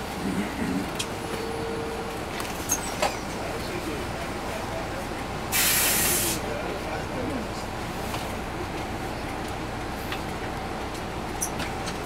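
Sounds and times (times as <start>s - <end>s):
diesel engine idling: 0.0s - 12.0s
compressed air hiss: 5.5s - 6.4s.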